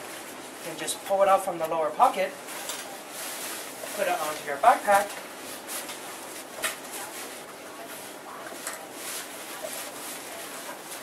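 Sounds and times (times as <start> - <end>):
fabric rain cover rustling: 0.0 - 11.0.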